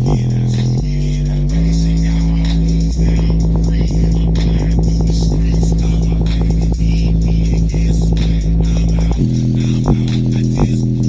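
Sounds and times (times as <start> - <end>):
bass-boosted electronic music: 0.0 - 11.0.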